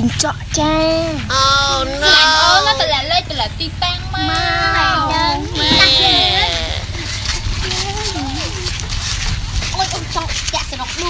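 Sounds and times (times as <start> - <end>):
gliding voice sounds: 1.2 - 2.9, 4.7 - 7.0
quavering bleat-like cry: 4.4 - 7.1.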